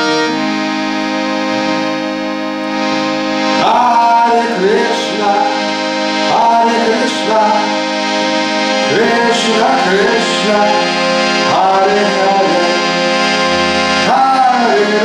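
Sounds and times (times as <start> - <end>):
harmonium playing held chords: 0.0 - 15.0
person singing: 3.4 - 15.0.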